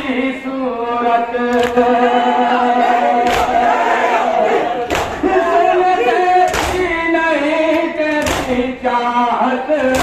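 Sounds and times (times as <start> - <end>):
men chanting in unison: 0.0 - 10.0
hands slapping chests: 1.5 - 1.8, 3.2 - 3.6, 4.8 - 5.2, 6.5 - 6.9, 8.2 - 8.6.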